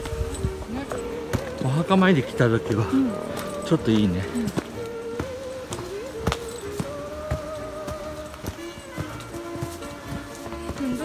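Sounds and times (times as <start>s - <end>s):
footsteps on dirt trail: 0.0s - 11.0s
thin wavering melody music: 0.0s - 11.0s.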